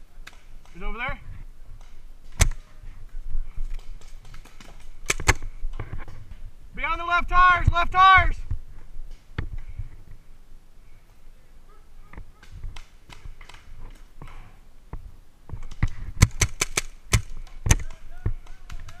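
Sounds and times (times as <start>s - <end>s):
paintball markers firing: 3.7s - 5.4s, 15.6s - 19.0s.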